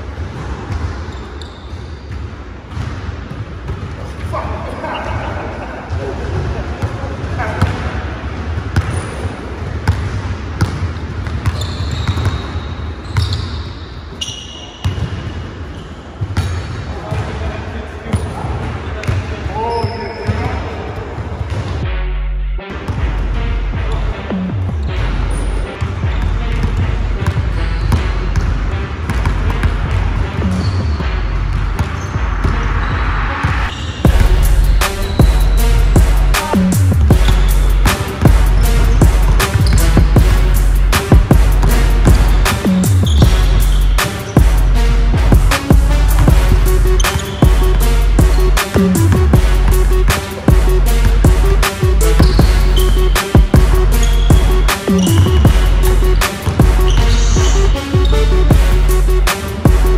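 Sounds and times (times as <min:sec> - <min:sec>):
sneaker squeaks: 0:00.3 - 0:04.2, 0:08.8 - 0:17.3, 0:18.0 - 0:21.7, 0:24.8 - 0:28.5, 0:29.1 - 0:34.2, 0:34.8 - 0:40.2, 0:42.1 - 0:44.5, 0:46.9 - 0:49.2, 0:52.0 - 0:58.4
basketball bouncing on wooden floor: 0:09.8 - 0:12.4, 0:26.1 - 0:30.8
loud background music: 0:21.6 - 0:59.9.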